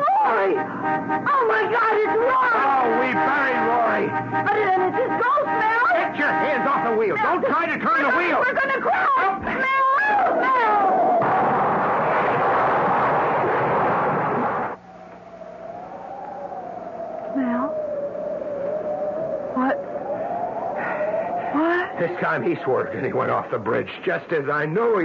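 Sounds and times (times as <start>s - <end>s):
woman screaming: 8.5s - 11.2s, 17.4s - 17.8s, 19.5s - 19.9s, 21.4s - 22.0s
loud rushing noise: 11.0s - 17.2s
wavering held tone: 14.9s - 23.1s.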